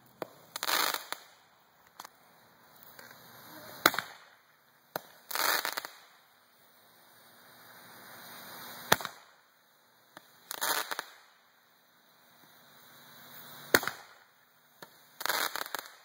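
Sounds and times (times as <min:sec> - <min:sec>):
firework crackling: 0:00.0 - 0:16.0
firework hiss: 0:00.0 - 0:16.0
sharp firework pop: 0:03.8 - 0:04.3, 0:08.8 - 0:09.3, 0:13.7 - 0:14.2.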